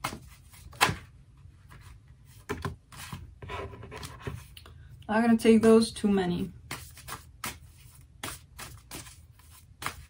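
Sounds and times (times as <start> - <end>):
cards shuffling: 6.7 - 10.0.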